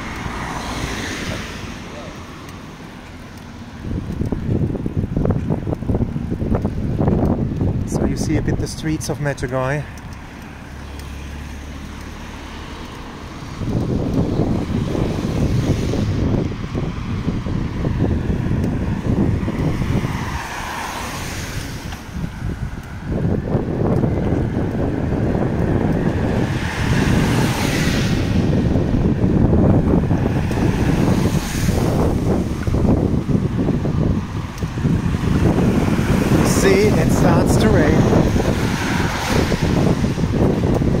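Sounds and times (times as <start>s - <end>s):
tyres hissing on wet road: 0.0s - 23.3s, 24.8s - 41.0s
wind buffeting microphone: 0.0s - 41.0s.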